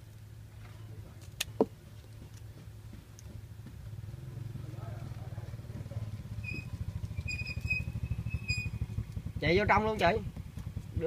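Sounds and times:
small engine running: 3.7s - 11.0s.

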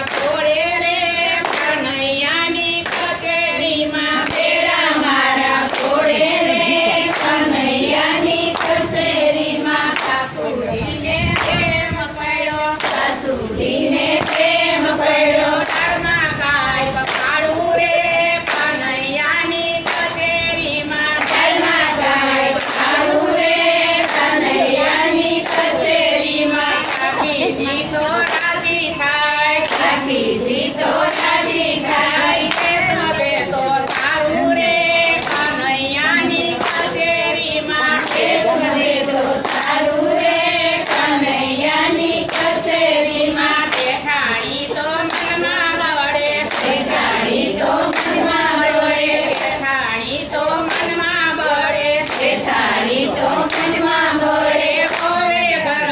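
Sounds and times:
hand clapping: 0.0s - 9.0s, 9.7s - 10.4s, 11.3s - 11.8s, 12.7s - 15.0s, 15.6s - 16.2s, 17.0s - 55.9s
women singing together: 0.0s - 55.9s.

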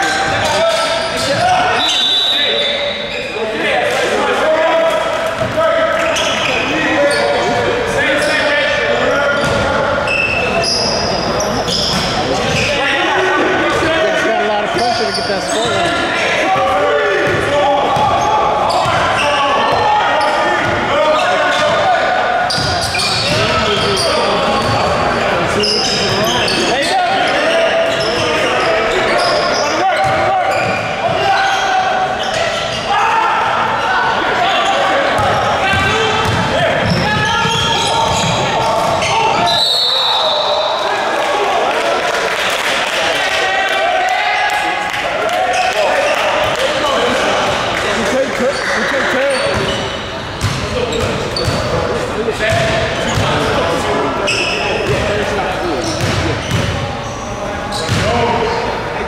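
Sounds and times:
basketball bouncing on court: 5.4s - 5.6s, 35.2s - 39.0s, 49.4s - 51.7s, 52.5s - 53.4s, 54.8s - 55.1s, 55.9s - 56.8s, 57.9s - 58.2s.

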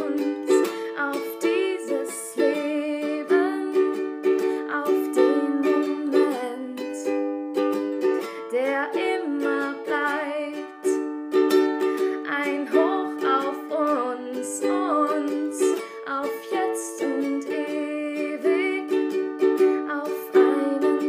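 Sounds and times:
ukulele chords strummed: 0.0s - 21.0s.

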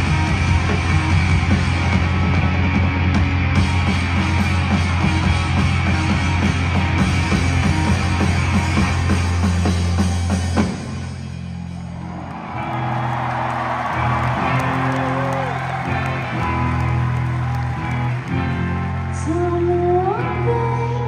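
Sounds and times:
live rock band playing: 0.0s - 11.9s, 12.6s - 21.0s
crowd cheering: 7.7s - 19.7s.

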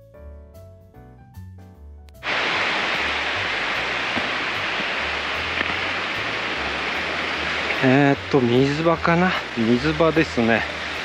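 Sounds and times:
rush of running water: 2.2s - 11.0s.

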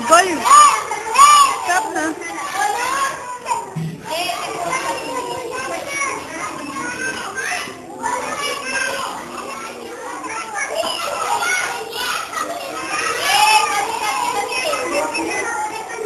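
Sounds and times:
children chattering and calling out: 0.0s - 16.0s.

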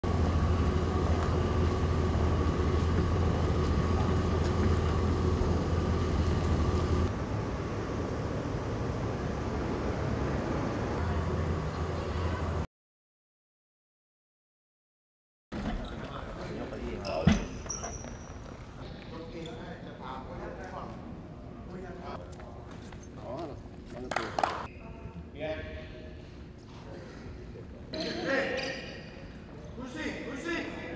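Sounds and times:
bus engine idling: 0.0s - 12.6s
people talking indoors: 15.5s - 30.9s.

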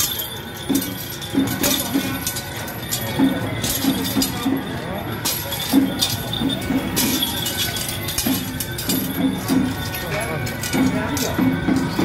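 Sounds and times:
metal chains clinking and jangling: 0.0s - 12.0s
music: 0.0s - 12.0s
voices: 0.0s - 12.0s.

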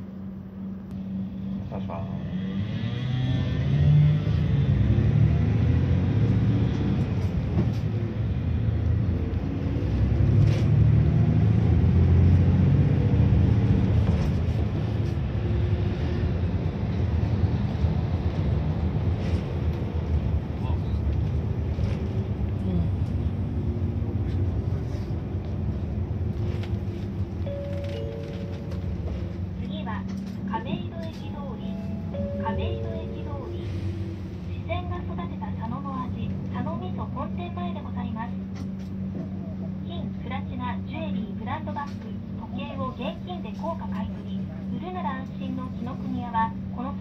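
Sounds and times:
vehicle engine and road noise: 0.0s - 47.0s.

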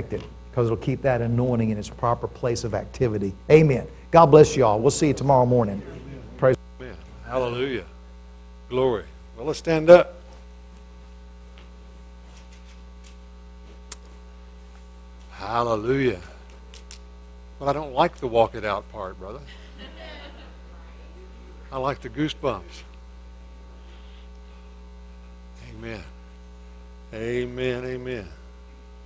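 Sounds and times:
man speaking: 0.0s - 7.9s, 15.4s - 16.4s, 21.6s - 22.9s, 25.6s - 26.2s, 27.1s - 28.4s
electrical mains hum: 0.0s - 29.0s
faint rustling of people standing: 10.2s - 15.4s.

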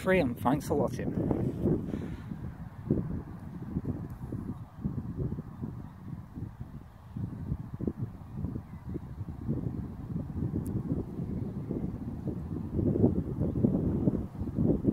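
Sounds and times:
wind buffeting microphone: 0.0s - 14.9s.

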